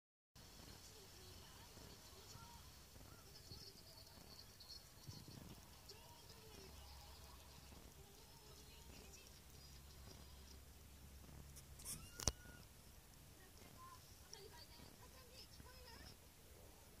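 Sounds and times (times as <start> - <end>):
cat purring: 0.4 - 17.0.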